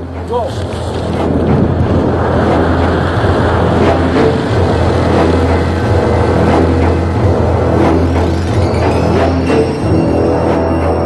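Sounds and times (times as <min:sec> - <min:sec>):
wind rushing on helmet: 0:00.0 - 0:10.7
music: 0:00.0 - 0:11.0.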